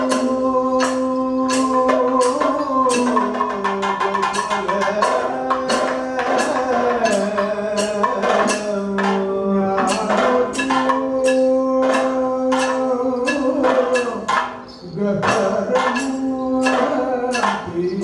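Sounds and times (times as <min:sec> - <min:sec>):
man singing held gliding notes: 0:00.0 - 0:18.0.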